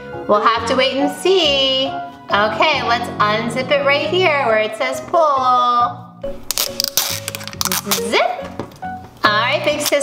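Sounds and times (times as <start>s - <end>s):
background music: 0.0s - 10.0s
plastic wrap tearing: 6.4s - 8.2s.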